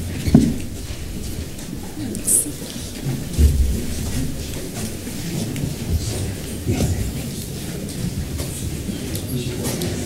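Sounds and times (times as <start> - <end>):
group of people shuffling: 0.0 - 10.0
murmured voices: 0.0 - 10.0
dull thump: 3.3 - 4.4.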